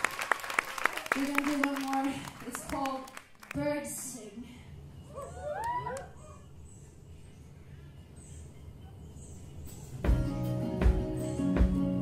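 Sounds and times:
audience whooping: 0:05.2 - 0:06.4.

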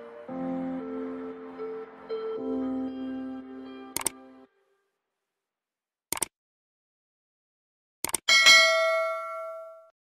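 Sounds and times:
quick clicks: 0:04.0 - 0:04.2, 0:06.1 - 0:06.3, 0:08.0 - 0:08.3
bright bell ding: 0:08.3 - 0:09.9.

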